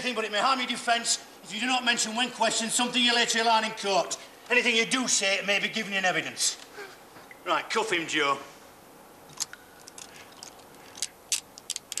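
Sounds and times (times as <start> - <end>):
handcuffs ratcheting clicks: 9.3 - 12.0.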